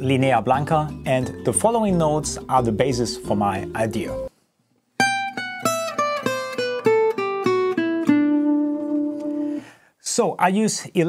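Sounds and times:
acoustic guitar descending line: 5.0 - 9.6.

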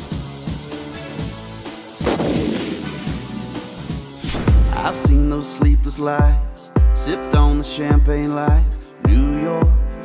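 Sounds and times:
background music: 0.0 - 10.0
loud explosion sound effect: 2.0 - 3.3.

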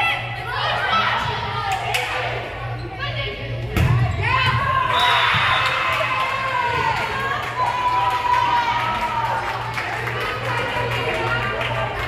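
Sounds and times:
people shouting and cheering: 3.9 - 12.0.

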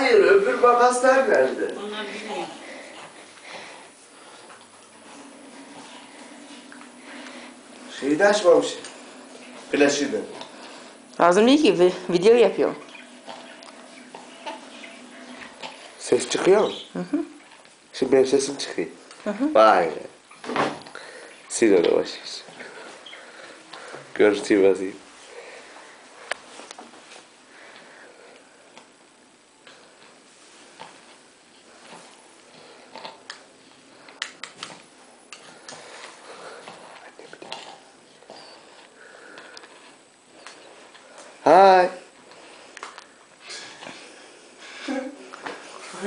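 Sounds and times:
low hiss: 0.0 - 46.0.

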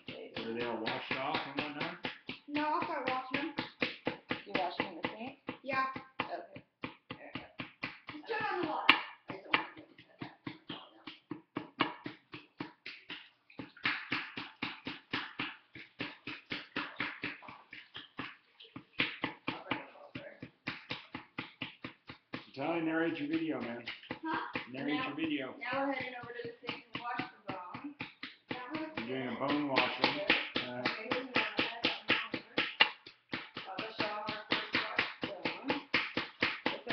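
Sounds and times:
small hammer tapping plaster: 0.0 - 36.9.

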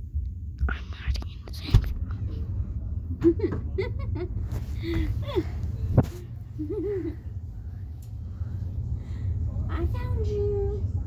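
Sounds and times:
person whispering: 0.6 - 2.4.

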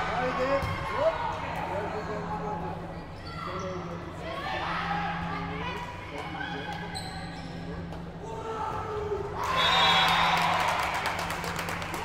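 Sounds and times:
crowd cheering and clapping: 9.4 - 12.0.

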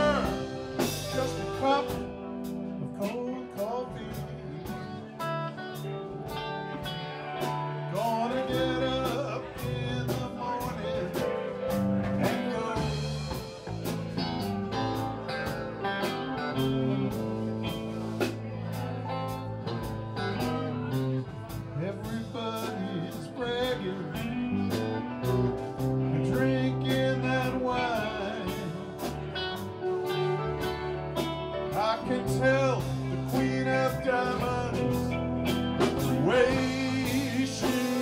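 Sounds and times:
steady drum beat: 0.0 - 2.6, 9.0 - 22.8, 32.8 - 38.0
bass guitar: 0.0 - 38.0
guitars: 0.0 - 38.0
keyboard: 0.0 - 38.0.

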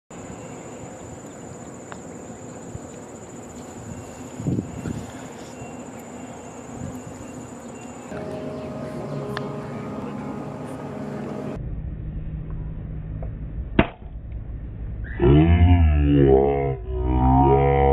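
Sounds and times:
insects buzzing: 0.2 - 10.2
low steady hum: 4.1 - 15.7.

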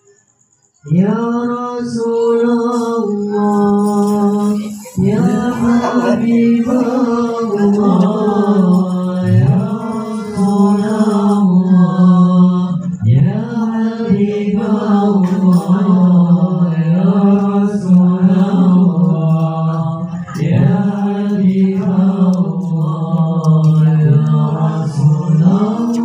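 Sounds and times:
man chanting into a microphone: 0.8 - 26.0.

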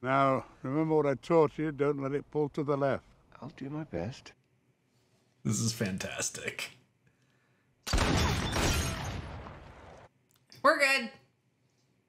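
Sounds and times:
loud gunshot: 7.9 - 10.1.

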